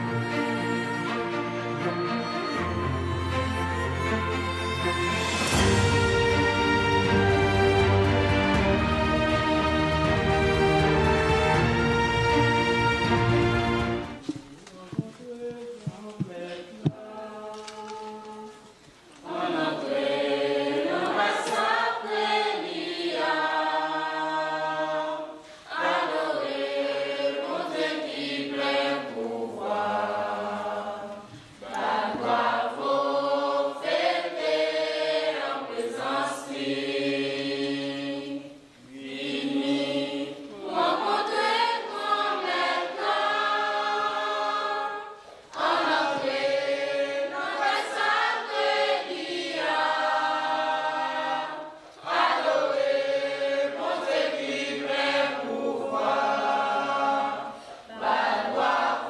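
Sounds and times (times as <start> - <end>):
girls' choir singing unaccompanied: 5.6 - 59.0.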